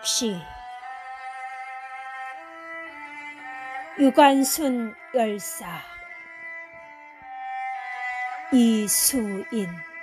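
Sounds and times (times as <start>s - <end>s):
violin holding sustained notes: 0.0s - 10.0s.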